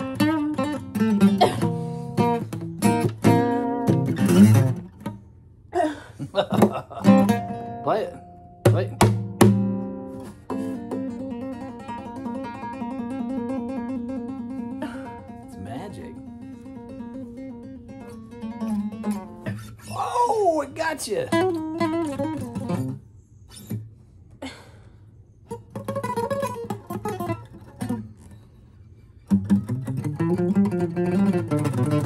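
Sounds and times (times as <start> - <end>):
acoustic guitar music: 0.0 - 5.7, 6.3 - 24.0, 25.4 - 32.0.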